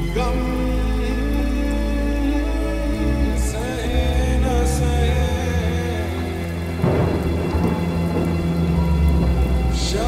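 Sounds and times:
rain: 0:00.0 - 0:10.0
slowed song with low held notes: 0:00.0 - 0:10.0
thunder rolling: 0:06.8 - 0:10.0.

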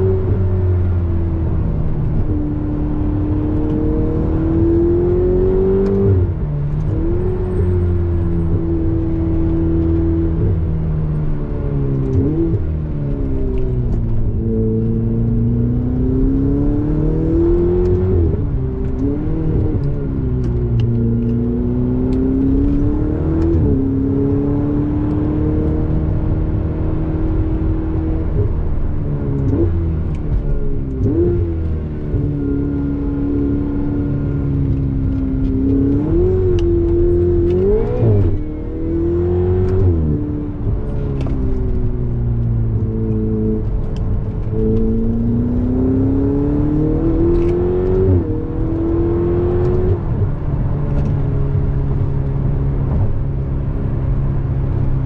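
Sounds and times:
sports car engine accelerating: 0:00.0 - 0:55.0
engine revs blipped on gear changes: 0:29.4 - 0:53.2.

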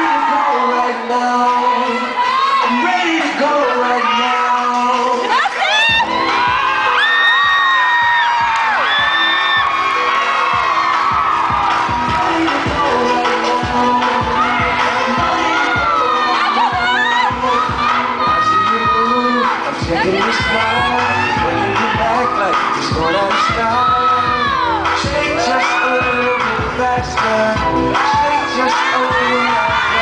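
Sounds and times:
crowd cheering and shouting: 0:00.0 - 0:30.0
hip-hop dance music: 0:00.0 - 0:30.0.

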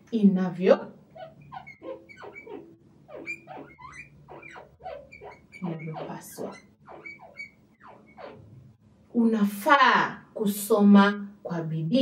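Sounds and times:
marker squeaking on board: 0:01.1 - 0:08.6.

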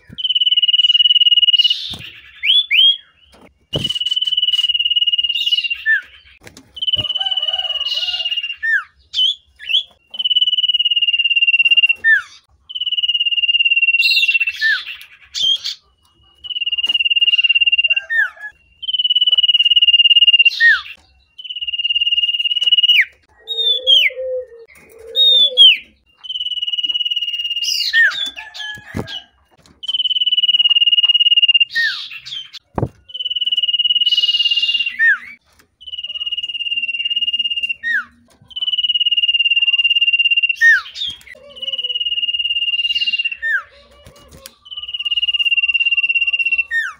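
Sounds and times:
bird whistling song: 0:00.0 - 0:29.2, 0:29.8 - 0:46.9.

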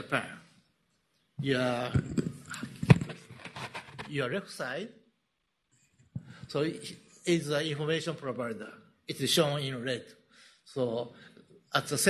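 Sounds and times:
microphone handling clicks and knocks: 0:01.9 - 0:04.2, 0:06.0 - 0:06.6.

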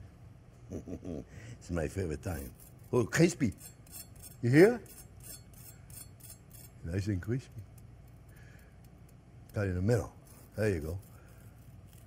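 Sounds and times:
knife sawing through crispy crust: 0:09.9 - 0:12.0.

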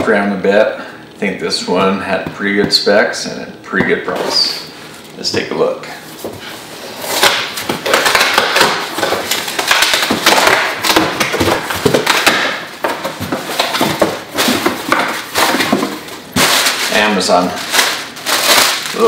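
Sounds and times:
packing tape ripping: 0:07.0 - 0:12.8, 0:13.5 - 0:19.0.

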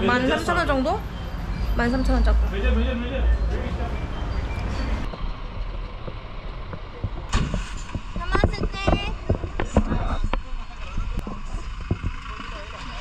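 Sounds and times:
van engine rumble with road noise: 0:00.0 - 0:13.0
sharp knocks and rattles: 0:05.1 - 0:13.0.

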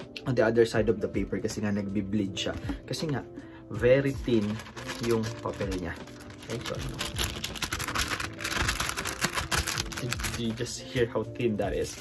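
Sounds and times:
thin paper pages fanned: 0:04.2 - 0:10.7, 0:11.7 - 0:12.0.

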